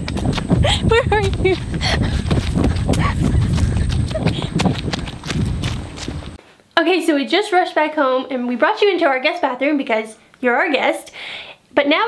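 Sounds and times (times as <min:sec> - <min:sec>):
handheld camera rumble: 0:00.0 - 0:06.4
running footsteps on dirt: 0:00.0 - 0:06.4.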